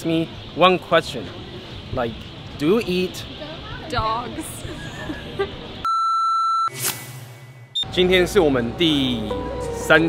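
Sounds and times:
steady electronic beep: 5.8 - 6.8
swish: 6.7 - 7.7.

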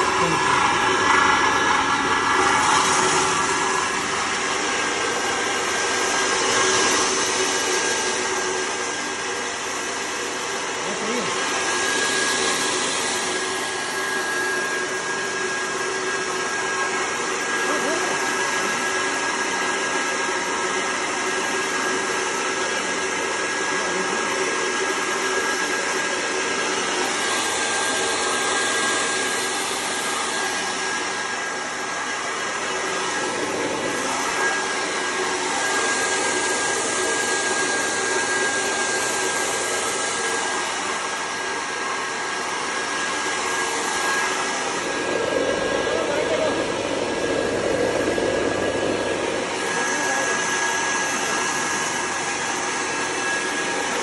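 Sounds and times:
machine motor and fan whine: 0.0 - 20.7, 23.0 - 54.0.

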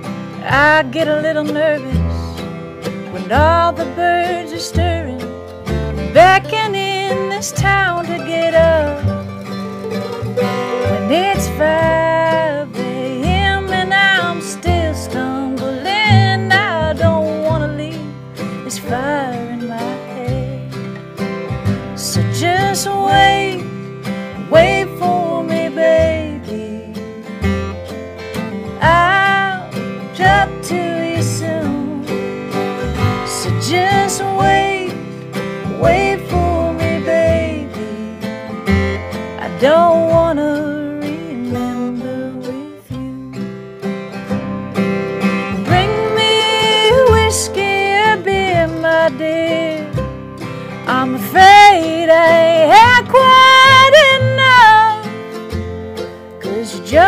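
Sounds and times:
acoustic guitar: 0.0 - 57.0
mandolin: 0.0 - 57.0
person singing: 0.4 - 2.4, 3.1 - 5.3, 6.0 - 20.8, 22.0 - 27.4, 28.8 - 38.5, 39.4 - 43.4, 45.6 - 55.2, 56.4 - 57.0.

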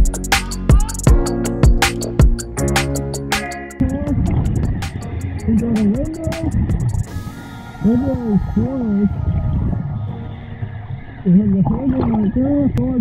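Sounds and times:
background music: 0.0 - 12.8
low rumble of water: 9.0 - 13.0.

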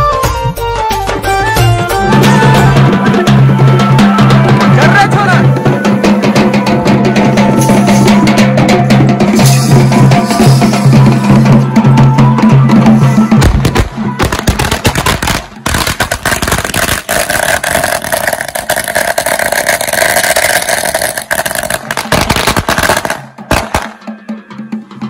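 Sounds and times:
band music with drums: 0.0 - 25.0
firecrackers cracking: 13.4 - 24.1.

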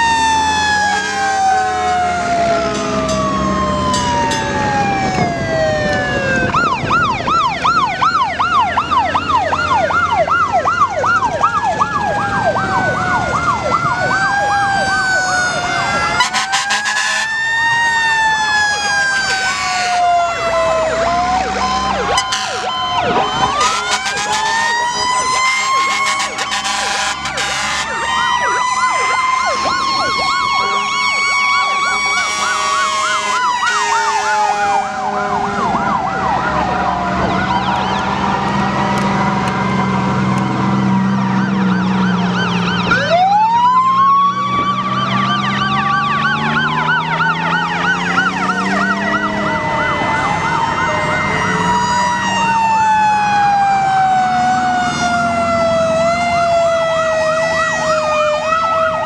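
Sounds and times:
fire truck sirens wailing: 0.0 - 59.0
warbling siren yelp: 0.0 - 59.0
horn blasts: 16.2 - 17.4, 22.1 - 28.1, 30.6 - 35.8.

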